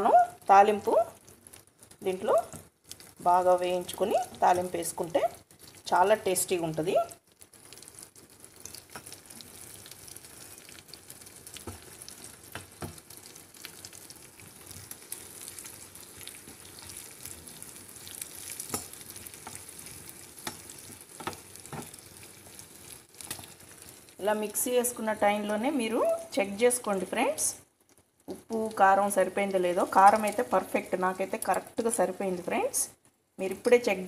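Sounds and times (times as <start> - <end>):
hot oil sizzling in a pan: 0.2 - 27.6, 28.2 - 32.8.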